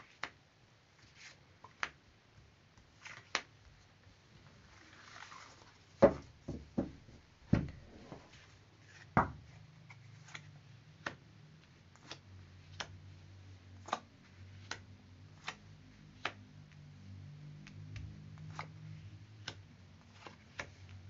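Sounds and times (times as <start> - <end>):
cards sliding across table: 7.7 - 9.2, 17.6 - 21.0.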